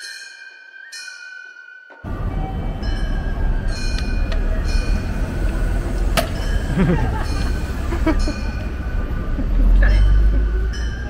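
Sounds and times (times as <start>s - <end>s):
street traffic rumble: 2.0s - 11.0s.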